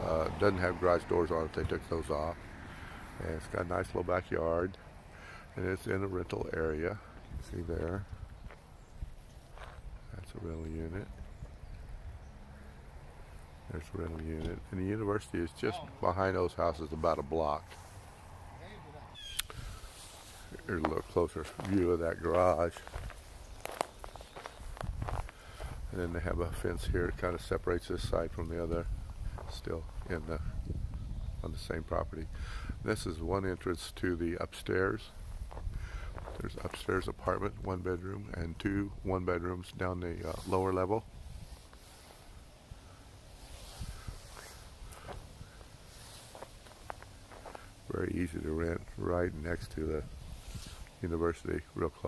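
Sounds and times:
footsteps on dry leaves: 8.4 - 10.0, 17.0 - 18.5, 19.4 - 26.0, 40.2 - 48.5.

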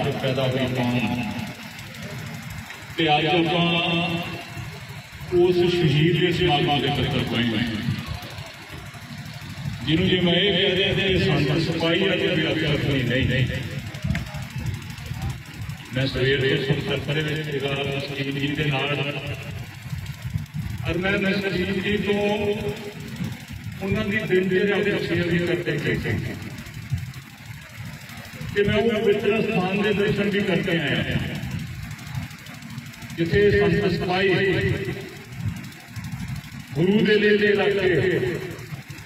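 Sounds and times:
man speaking over loudspeakers: 0.0 - 1.6, 3.0 - 8.3, 9.8 - 19.7, 20.8 - 26.5, 28.4 - 31.6, 33.1 - 35.2, 36.7 - 38.7
low steady background rumble: 0.0 - 39.0
man speaking: 3.0 - 4.5, 5.3 - 8.0, 9.9 - 13.7, 15.9 - 19.4, 28.6 - 31.2.

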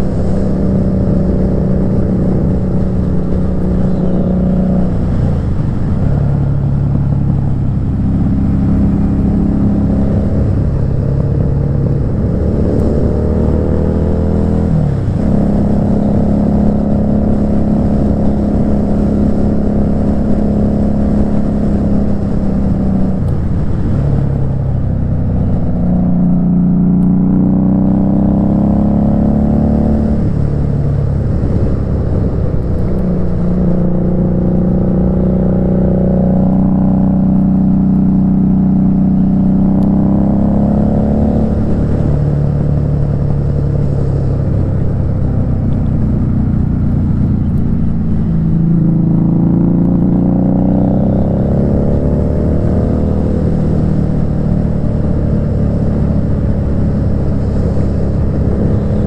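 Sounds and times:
motorcycle engine accelerating: 0.0 - 59.0.

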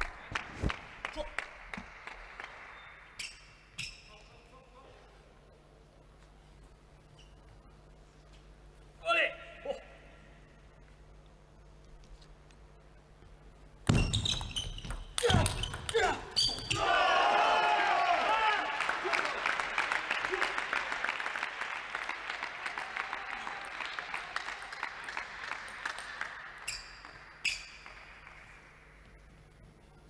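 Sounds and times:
crowd clapping and cheering: 0.0 - 3.2, 16.8 - 29.7
table tennis ball hits: 13.8 - 16.8.

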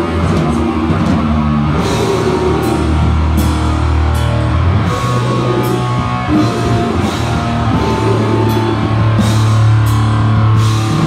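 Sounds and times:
death-grind band playing: 0.0 - 11.0.

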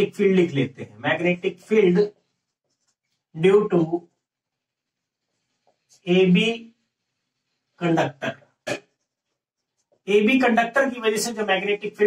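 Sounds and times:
marker writing on whiteboard: 1.4 - 10.5.

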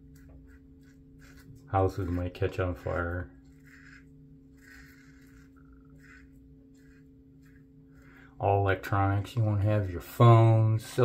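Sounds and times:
razor scraping skin: 0.0 - 10.3
steady low hum: 0.0 - 11.0.

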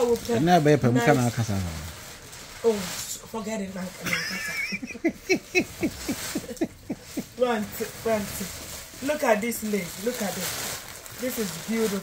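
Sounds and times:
woman laughing: 4.0 - 7.5.

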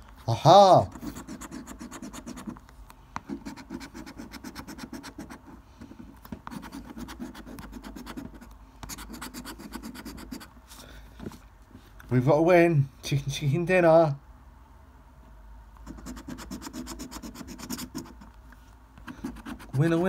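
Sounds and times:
coin scratching scratchcard: 0.8 - 2.6, 3.3 - 5.5, 6.5 - 10.5, 15.8 - 18.3, 19.0 - 20.0.

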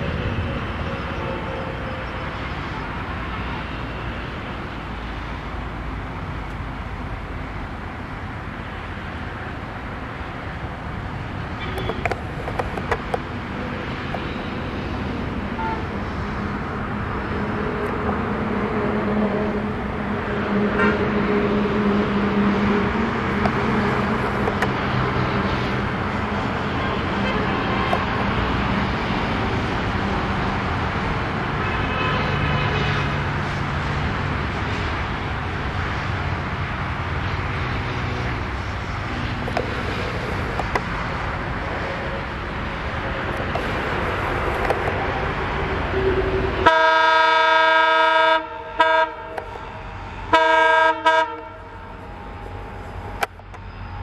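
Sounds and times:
diesel locomotive rumble: 0.0 - 54.0
train air horn: 15.6 - 16.0, 31.6 - 33.2, 45.9 - 52.0.

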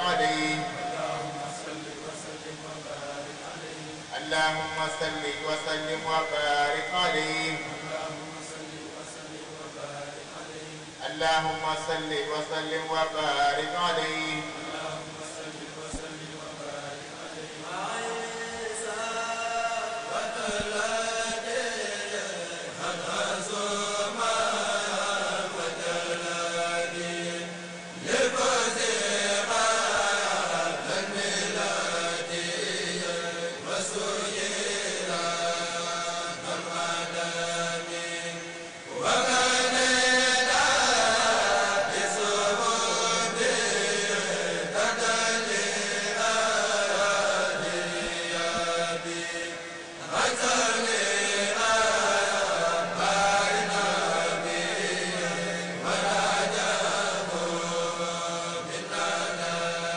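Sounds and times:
men chanting over loudspeaker: 0.0 - 59.9.

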